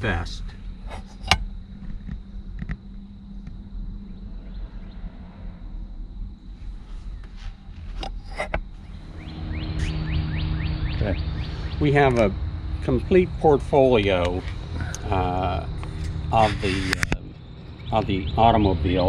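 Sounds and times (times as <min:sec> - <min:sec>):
low steady hum: 0:00.0 - 0:19.0
rush of noise: 0:08.8 - 0:19.0.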